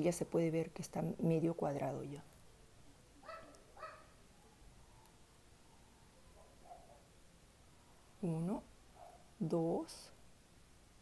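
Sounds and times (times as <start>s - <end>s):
dog yipping: 3.2s - 4.2s, 6.4s - 7.0s.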